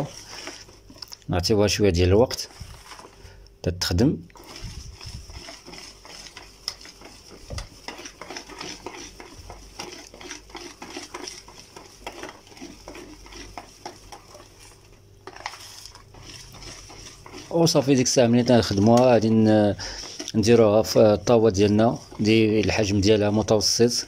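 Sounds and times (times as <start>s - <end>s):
whisk beating batter in bowl: 0.0s - 3.2s, 3.8s - 24.0s.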